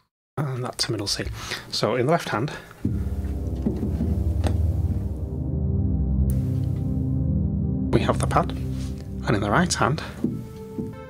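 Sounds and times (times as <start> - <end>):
synth pad low chord: 2.9 - 10.7.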